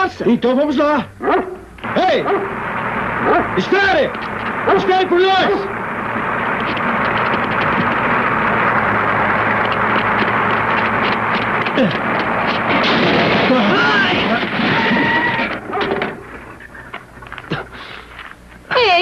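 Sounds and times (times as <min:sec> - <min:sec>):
open car rattling at speed: 0:00.7 - 0:17.5.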